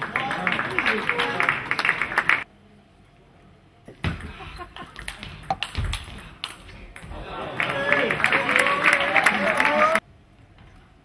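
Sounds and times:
crowd applauding and calling out: 0.0 - 2.5, 7.2 - 10.0.

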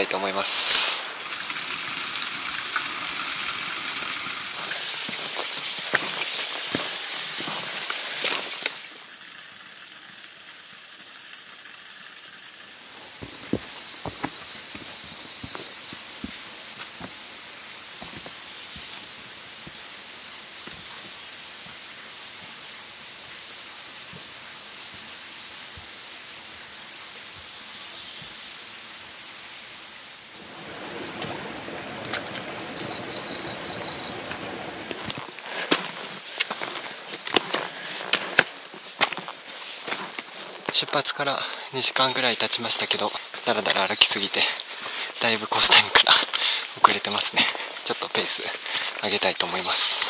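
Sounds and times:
mountain stream rushing: 0.0 - 50.0.

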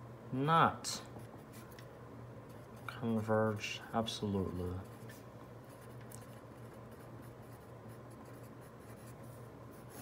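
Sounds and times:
low steady hum: 0.0 - 10.0
pen scratching on paper: 4.4 - 10.0.

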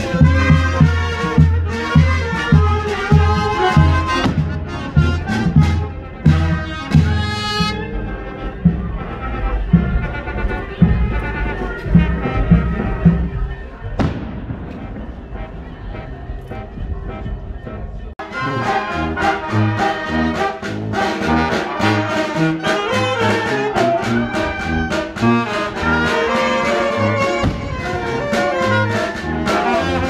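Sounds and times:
street brass band playing: 0.0 - 30.0.

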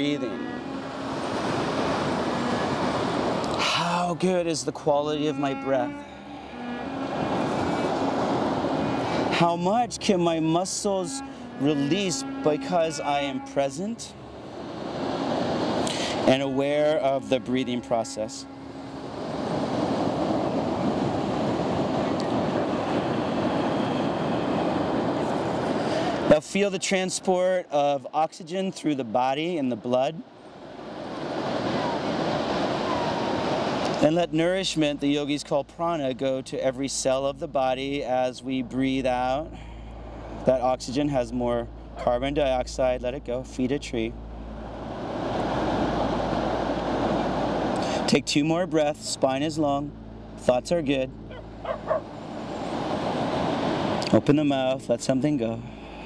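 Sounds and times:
ocean surf breaking on beach: 0.0 - 27.7, 29.0 - 35.5, 44.3 - 48.2, 51.2 - 54.8.

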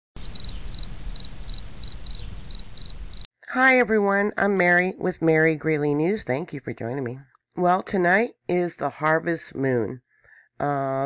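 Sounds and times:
insect chirping trills: 0.2 - 3.3.

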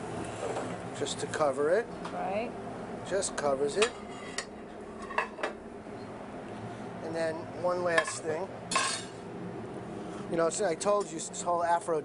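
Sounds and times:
low kitchen hum: 0.0 - 12.0
metal cookware clanking: 7.9 - 9.2.

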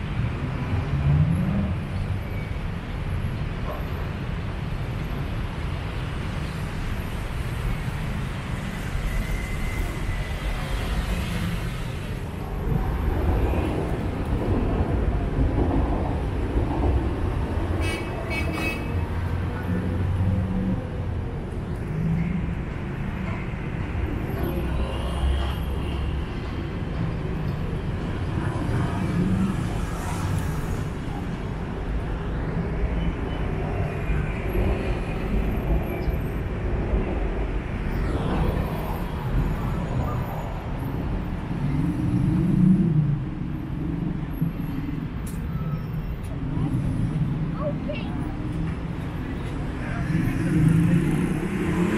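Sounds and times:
road traffic rumble: 0.0 - 51.9
vehicles passing: 0.0 - 51.9.

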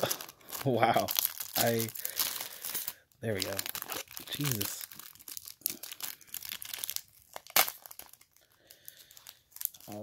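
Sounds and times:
foil wrapper crinkling: 0.0 - 10.0.

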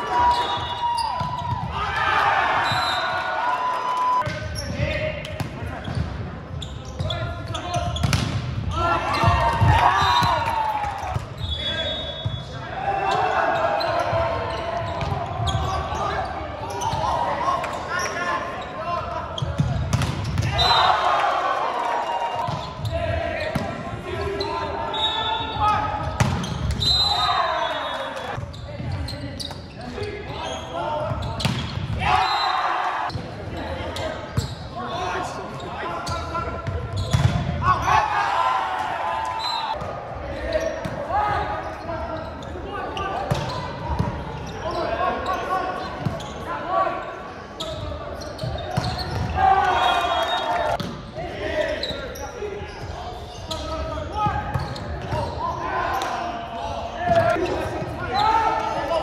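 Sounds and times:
players shouting and cheering: 0.0 - 59.0.

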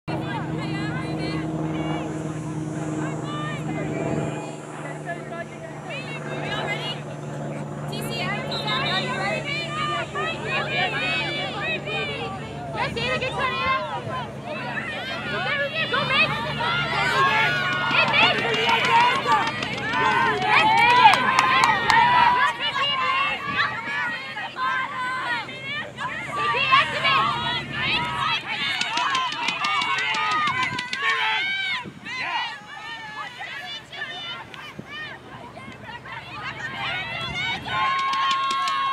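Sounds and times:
voices calling and shouting: 0.0 - 38.9
steady low hum: 0.1 - 30.6.

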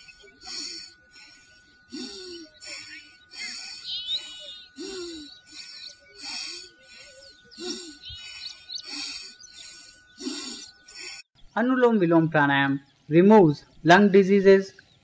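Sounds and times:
low arching bird call: 0.0 - 11.2
rhythmic high hissing pulses: 0.0 - 11.7
short high bird chirps: 3.8 - 4.7.

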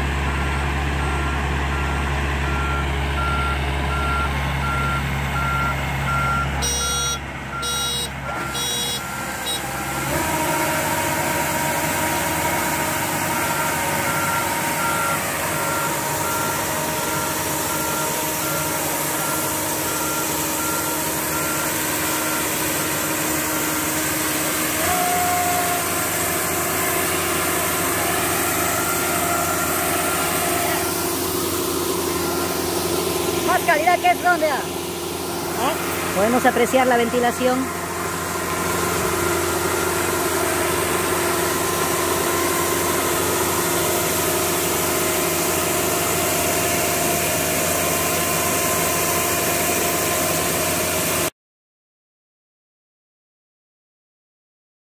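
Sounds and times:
harvester engine running: 0.0 - 51.3
electronic beeper: 1.1 - 9.8, 28.5 - 34.7
unloading auger running: 8.2 - 51.2.

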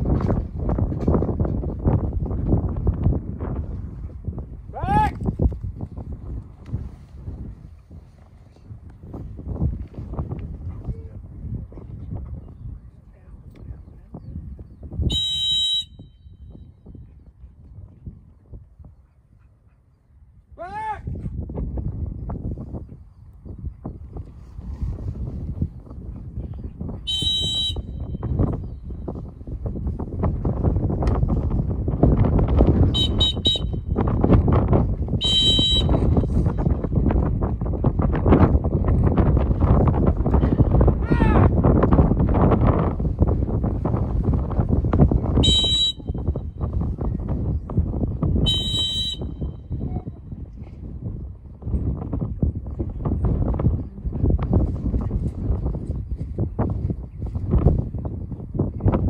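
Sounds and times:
wind rumbling on microphone: 0.0 - 59.0
dog training whistle blasts: 15.1 - 16.2, 27.1 - 28.0, 33.0 - 33.8, 35.2 - 36.0, 45.4 - 46.2, 48.4 - 49.4.

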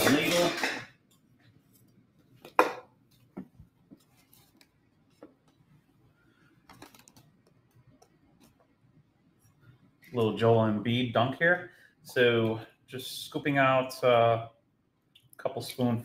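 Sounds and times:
kitchen utensils and dishes clicking: 0.0 - 0.8.

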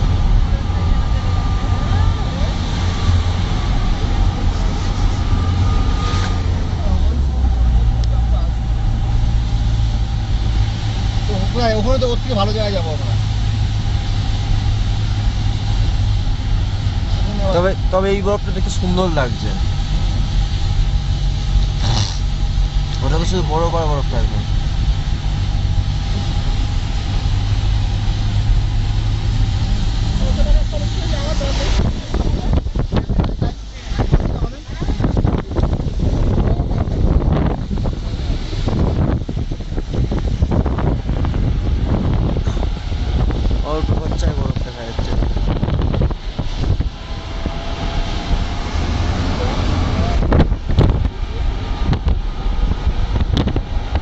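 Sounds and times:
car engine and road noise: 0.0 - 54.0
wind buffeting microphone: 0.0 - 54.0.

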